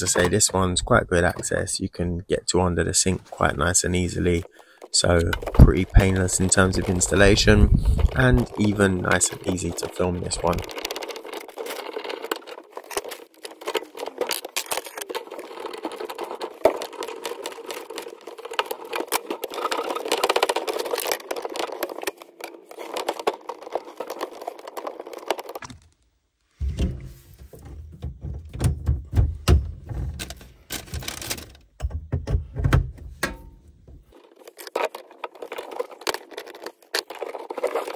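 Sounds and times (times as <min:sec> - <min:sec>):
small metallic clicks and rattles: 0:04.2 - 0:25.7, 0:34.1 - 0:37.9.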